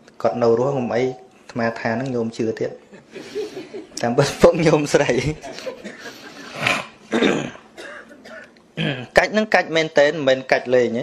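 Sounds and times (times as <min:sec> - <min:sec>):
person coughing: 0:05.7 - 0:09.2.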